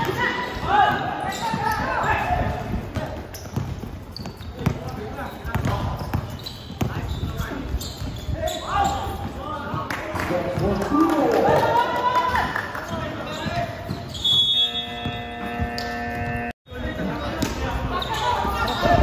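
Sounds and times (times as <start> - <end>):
basketball dribbling on court: 0.0 - 10.8.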